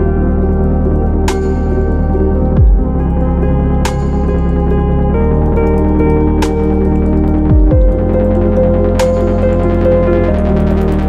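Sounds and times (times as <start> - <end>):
ambient new-age music: 0.0 - 11.0.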